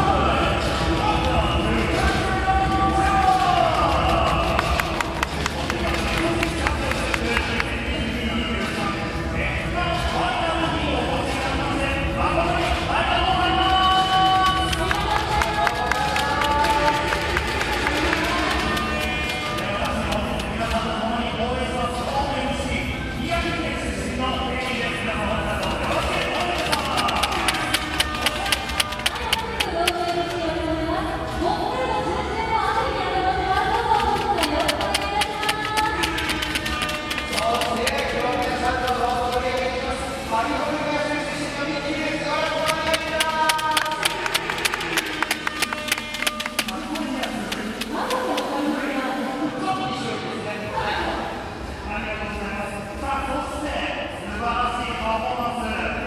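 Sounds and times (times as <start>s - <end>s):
music: 0.0s - 56.0s
voices talking in a hall: 0.0s - 56.0s
sharp handclaps: 3.3s - 7.8s, 14.2s - 20.7s, 25.6s - 30.4s, 33.8s - 39.7s, 42.3s - 48.5s
person speaking: 14.2s - 20.7s, 25.5s - 30.5s, 33.7s - 39.9s, 42.2s - 48.9s
sharp clicks: 25.6s - 30.4s, 33.8s - 39.7s, 42.4s - 48.4s.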